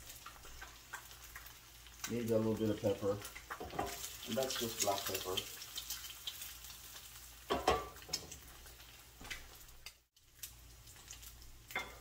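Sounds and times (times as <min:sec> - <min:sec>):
egg sizzling in a pan: 0:00.0 - 0:12.0.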